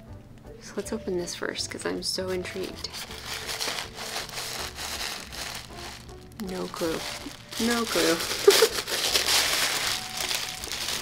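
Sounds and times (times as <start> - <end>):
wrapping paper rustling: 2.3 - 11.0.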